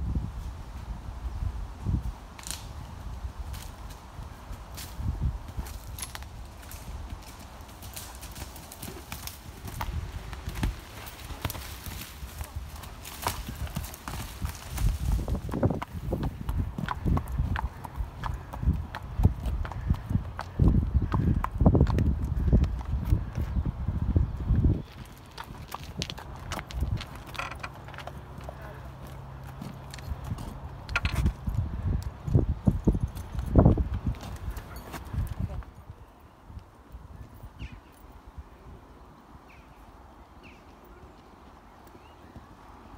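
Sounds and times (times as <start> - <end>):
horse hoofbeats: 5.4 - 23.6, 24.6 - 31.6.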